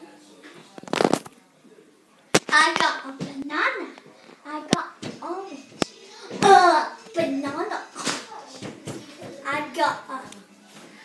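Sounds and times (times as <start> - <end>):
child speaking: 2.5 - 10.4.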